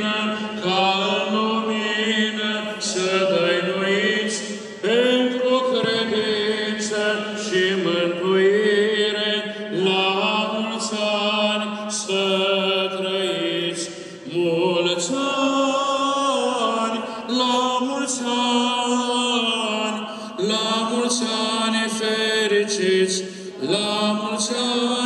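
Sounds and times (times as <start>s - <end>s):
liturgical chanting through microphone: 0.0s - 25.0s.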